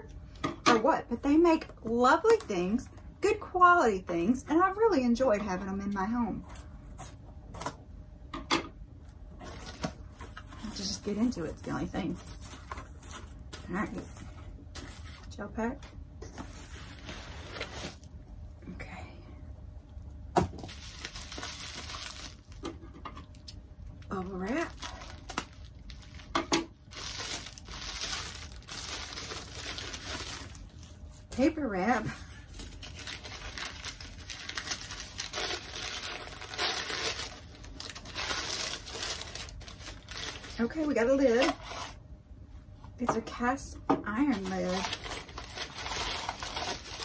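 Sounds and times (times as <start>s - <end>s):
bubble wrap crinkling: 9.0s - 18.2s, 20.6s - 42.0s, 44.3s - 47.0s
packing paper rustling: 9.4s - 15.4s, 16.3s - 18.2s, 20.6s - 42.0s, 44.3s - 47.0s.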